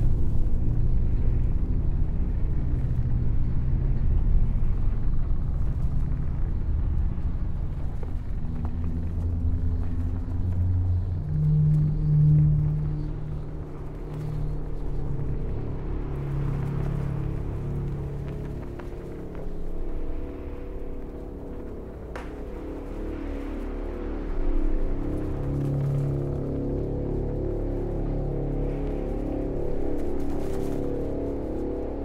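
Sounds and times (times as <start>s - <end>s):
dark ambient drone music: 0.0s - 32.0s.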